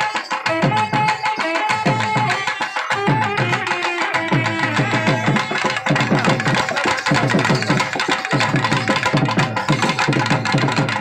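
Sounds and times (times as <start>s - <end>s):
fast hand drum strokes: 0.0s - 11.0s.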